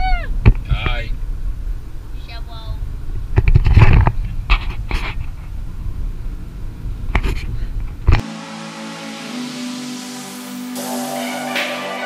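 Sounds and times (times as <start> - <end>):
car interior road noise: 0.0 - 8.2
electronic chords music: 8.2 - 12.0.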